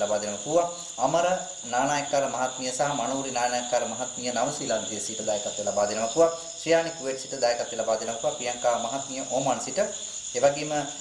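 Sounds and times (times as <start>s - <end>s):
crickets chirping: 0.0s - 11.0s
man speaking: 0.0s - 11.0s.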